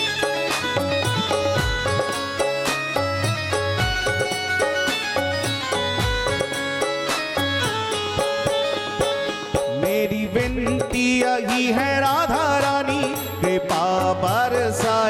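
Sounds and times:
repeating devotional melody: 0.0s - 15.0s
steady drum beat: 0.0s - 15.0s
person singing: 9.0s - 15.0s.

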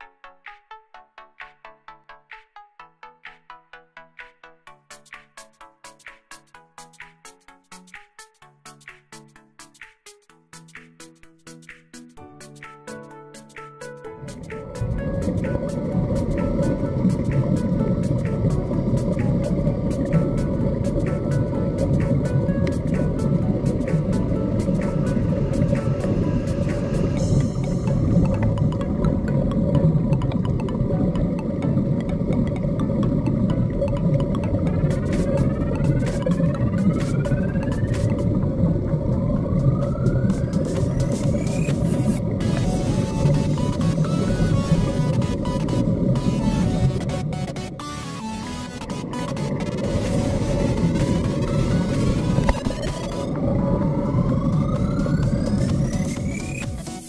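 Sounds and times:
rising whines: 14.2s - 57.0s
underwater motor rumble: 14.2s - 57.0s.

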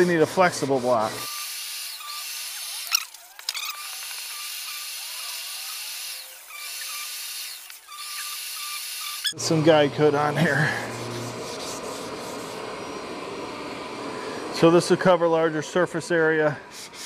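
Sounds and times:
sanding block scratchy hiss: 0.0s - 9.3s, 10.5s - 12.6s, 16.7s - 17.0s.

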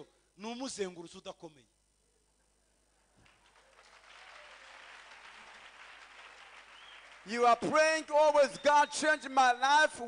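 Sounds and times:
faint applause: 3.2s - 7.9s.

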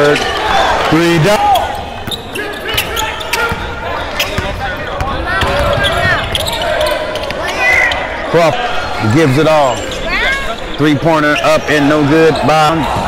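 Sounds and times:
people shouting in echoing gym: 0.2s - 10.7s.

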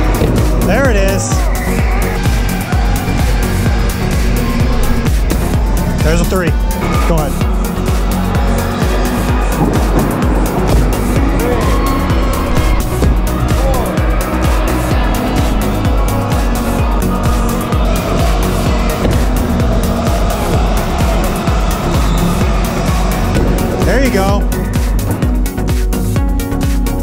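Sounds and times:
tyres squealing: 0.0s - 25.6s
loud music: 0.0s - 27.0s.

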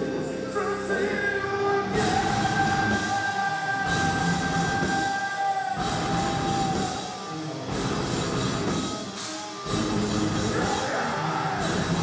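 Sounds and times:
distorted guitar tone: 0.0s - 12.0s
metal band playing live: 0.0s - 12.0s.

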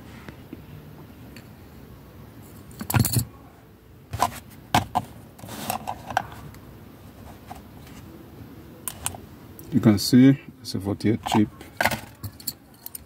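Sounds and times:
car keys clinking and rattling: 2.4s - 3.3s, 11.2s - 13.0s.

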